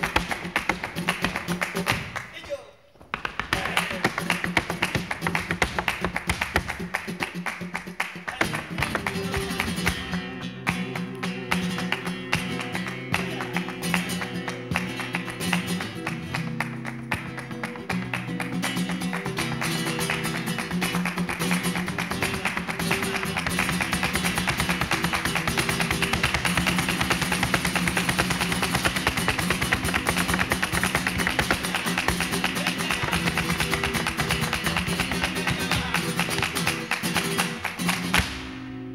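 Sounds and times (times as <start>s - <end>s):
heeled shoes striking a stage: 0.0s - 38.7s
flamenco guitar: 0.0s - 38.9s.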